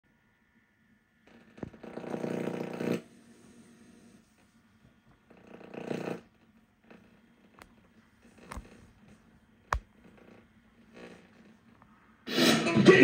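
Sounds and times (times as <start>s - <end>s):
tape mechanism buzzing whirs: 1.2s - 4.3s, 5.3s - 11.8s.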